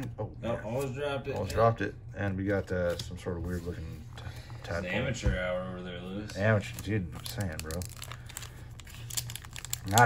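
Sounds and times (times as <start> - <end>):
foil wrapper crinkling: 6.3 - 10.0.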